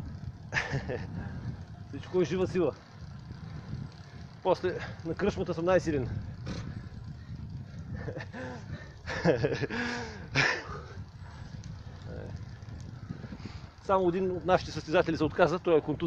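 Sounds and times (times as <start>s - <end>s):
wind and road noise: 0.0s - 16.0s
man talking: 13.8s - 16.0s.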